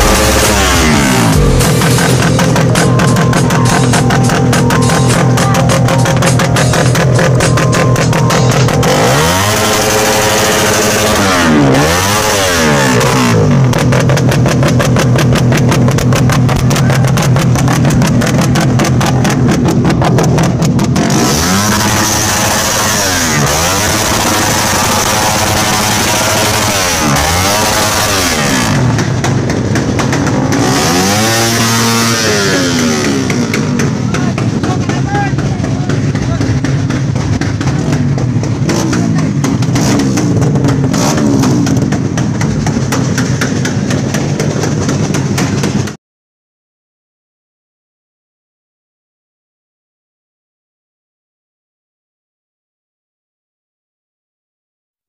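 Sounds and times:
motorcycle engine revving: 0.0s - 46.0s.

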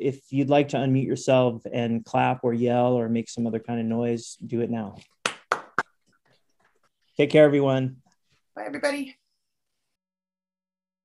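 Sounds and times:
hand claps: 5.2s - 6.0s.

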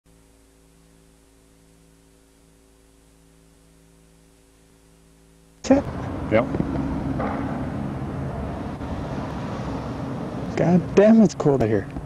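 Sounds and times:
faint electrical hum: 0.1s - 12.0s
tape hiss: 0.1s - 12.0s.

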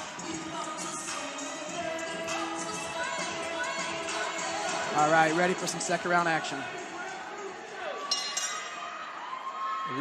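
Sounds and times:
crowd hubbub: 3.8s - 9.5s
metallic bell ringing: 8.1s - 8.7s.

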